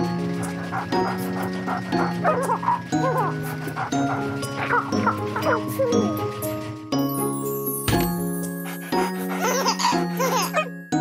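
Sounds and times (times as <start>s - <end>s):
bouncy children's song music: 0.0s - 11.0s.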